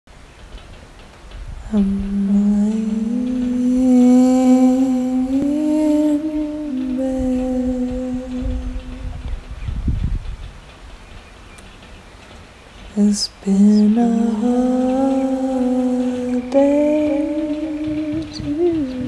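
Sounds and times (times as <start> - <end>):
person humming a long note: 1.6 - 9.4, 13.0 - 19.0.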